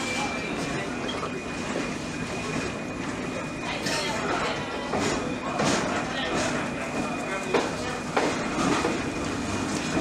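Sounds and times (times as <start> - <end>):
train wheels on rails: 4.1 - 10.0.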